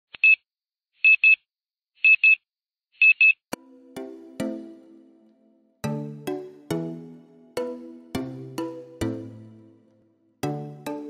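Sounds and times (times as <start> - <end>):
sustained music notes: 3.5 - 11.0.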